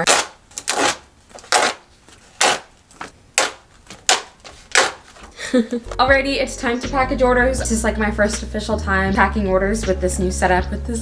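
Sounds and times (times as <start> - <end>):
paper cards rustling: 0.0 - 6.1.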